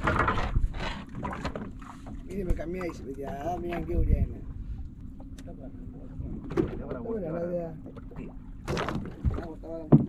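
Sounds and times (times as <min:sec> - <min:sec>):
fish scraping on boat deck: 0:00.0 - 0:02.3.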